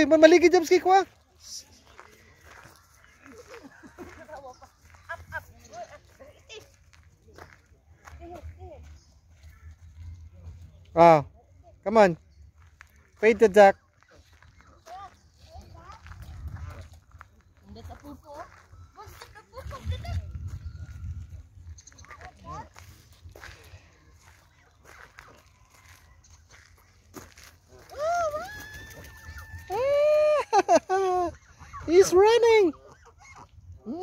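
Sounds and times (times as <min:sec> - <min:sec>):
low wind rumble on microphone: 0:19.6 - 0:22.1.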